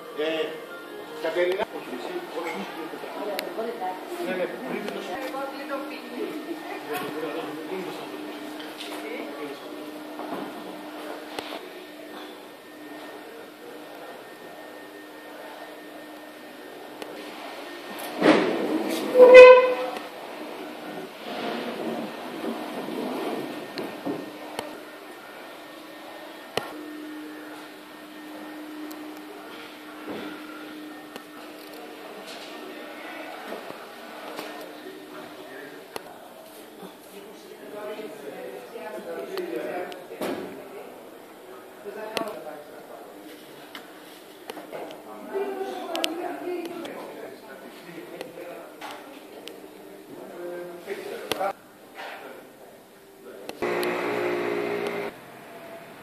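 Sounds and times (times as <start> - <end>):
steady low hum: 53.6 - 55.1.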